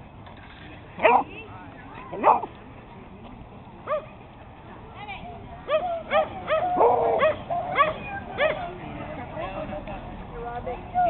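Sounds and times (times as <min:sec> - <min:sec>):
dog yelping barks: 0:05.7 - 0:08.6.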